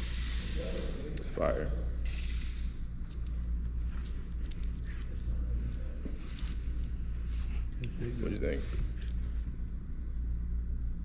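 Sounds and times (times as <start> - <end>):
low background rumble: 0.0 - 11.0
bracelet links clicking: 2.3 - 7.4.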